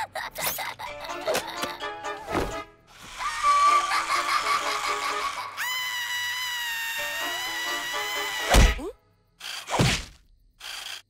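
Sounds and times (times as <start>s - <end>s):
cartoon music: 0.9s - 5.9s, 6.9s - 8.6s
high steady scream of fright: 3.0s - 8.9s.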